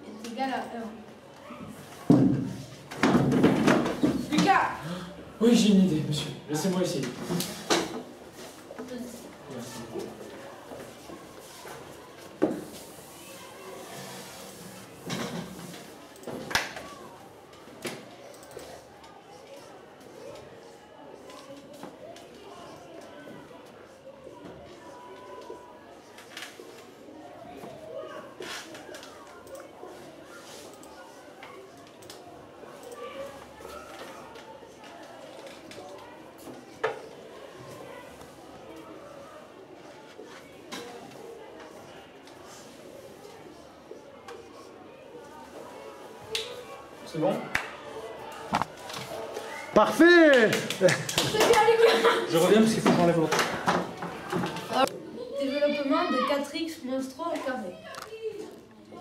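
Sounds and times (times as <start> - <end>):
murmur of voices: 0.0 - 59.0.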